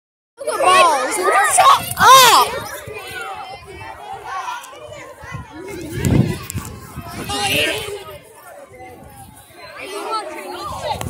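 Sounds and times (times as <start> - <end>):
young people chattering and calling: 0.4 - 11.0.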